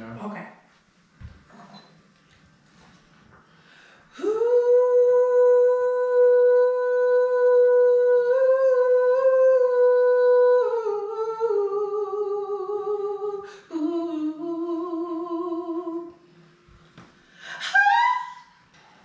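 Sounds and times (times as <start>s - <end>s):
woman singing ooh: 4.1s - 16.2s, 17.4s - 18.6s.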